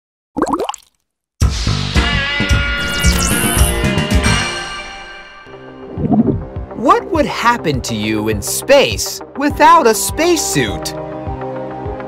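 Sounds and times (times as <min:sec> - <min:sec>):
cartoon bubble plops: 0:00.4 - 0:00.9
music: 0:01.4 - 0:12.0.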